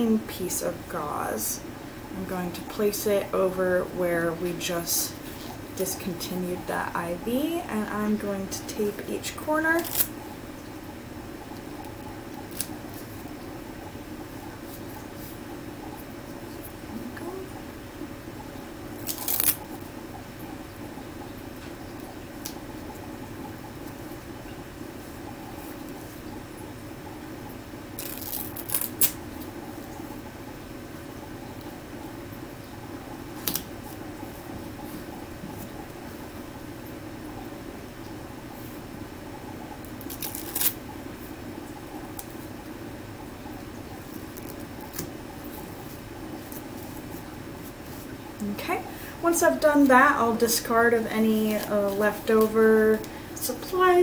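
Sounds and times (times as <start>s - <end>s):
steady low hum: 0.0s - 54.0s
adhesive tape rustling and crackling: 9.8s - 10.2s, 11.8s - 13.3s, 19.0s - 19.8s, 28.0s - 29.2s, 40.0s - 40.8s.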